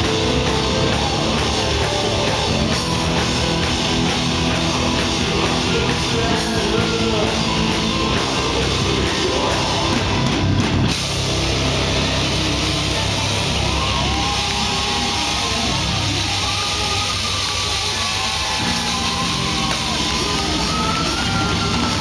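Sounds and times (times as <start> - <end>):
live rock band playing loud: 0.0 - 22.0.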